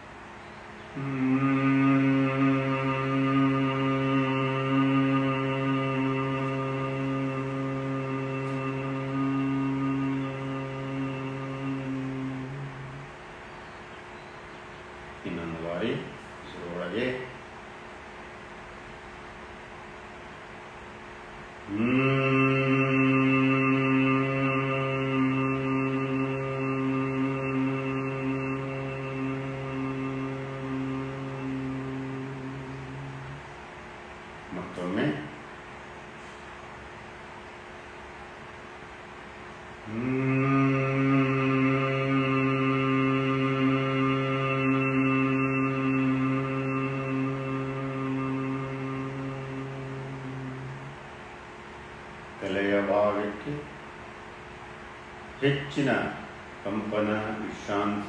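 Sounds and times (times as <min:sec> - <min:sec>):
man humming low note: 0:00.8 - 0:13.4, 0:21.6 - 0:33.6, 0:34.5 - 0:35.4, 0:39.8 - 0:51.3.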